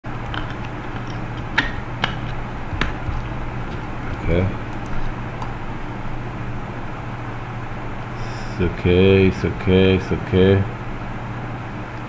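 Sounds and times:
low background hum: 0.0s - 12.0s
sharp clicks: 0.1s - 5.6s.

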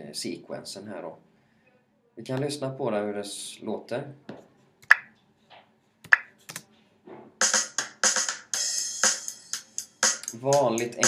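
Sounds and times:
busy hi-hat and cymbal: 7.4s - 11.0s
programmed drum beat: 7.4s - 11.0s.

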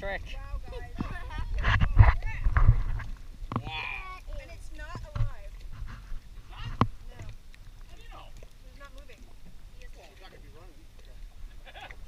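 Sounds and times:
wind rumble on microphone: 0.0s - 7.7s
excited voices and laughter: 0.4s - 1.6s, 11.5s - 12.0s.

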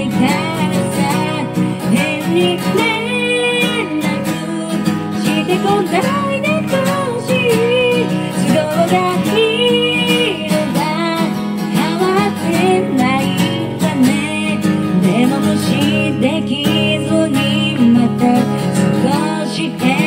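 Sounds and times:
strummed acoustic guitar: 0.0s - 20.0s
woman singing pop song: 0.0s - 20.0s.

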